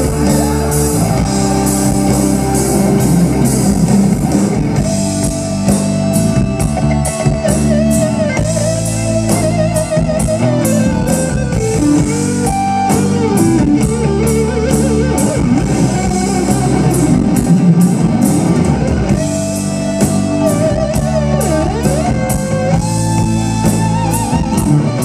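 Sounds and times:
bass guitar: 0.0 - 25.0
drum kit: 0.0 - 25.0
electric guitar solo: 0.0 - 25.0.

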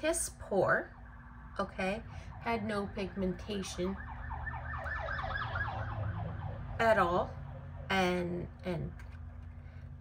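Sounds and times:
emergency siren yelping: 0.8 - 8.0.

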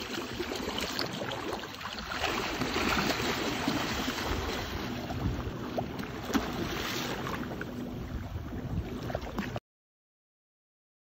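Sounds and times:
water splashing: 0.0 - 9.6
wind buffeting microphone: 2.3 - 9.6.

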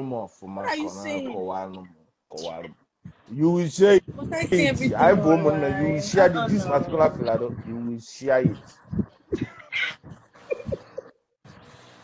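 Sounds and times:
people laughing: 9.4 - 11.1.

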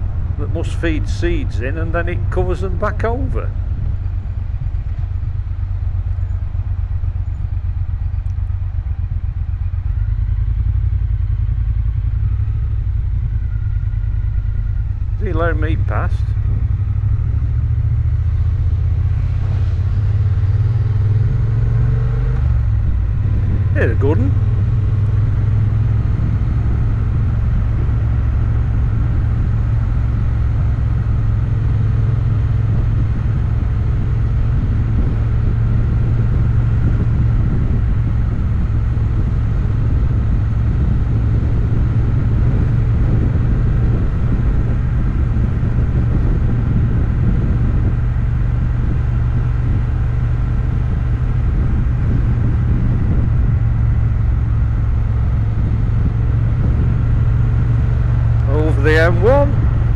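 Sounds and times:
motorcycle engine cruising: 0.0 - 59.9.

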